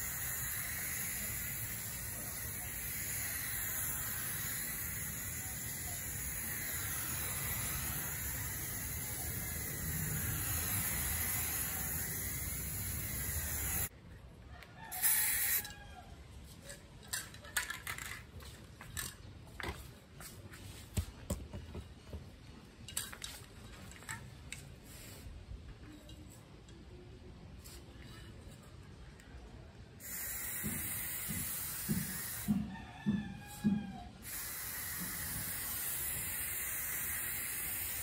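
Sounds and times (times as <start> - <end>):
spray can hissing: 0.0 - 13.9, 15.0 - 15.6, 30.0 - 32.6, 34.2 - 38.0.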